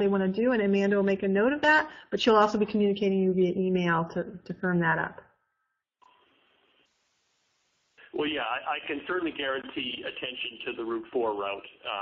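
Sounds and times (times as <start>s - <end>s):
woman speaking: 0.0s - 5.2s
faint hiss: 6.0s - 12.0s.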